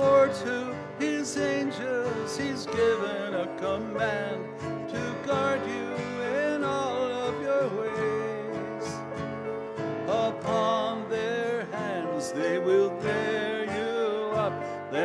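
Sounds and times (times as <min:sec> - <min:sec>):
acoustic guitar: 0:00.0 - 0:15.0
person singing a hymn: 0:00.0 - 0:15.0.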